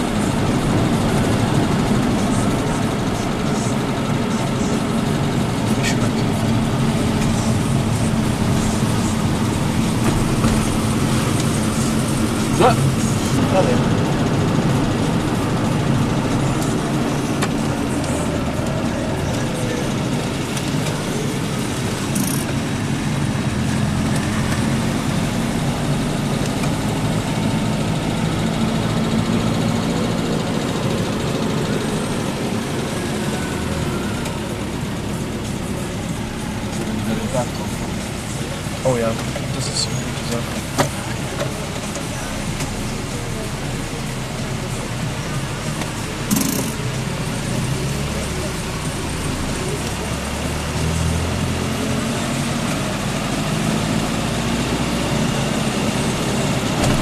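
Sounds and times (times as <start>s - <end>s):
small engine droning: 0.0s - 57.0s.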